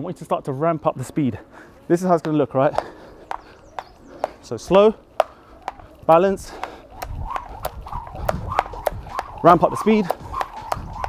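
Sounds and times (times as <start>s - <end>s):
soft landings of feet: 2.2s - 11.0s
skipping rope ticking on mat: 5.2s - 11.0s.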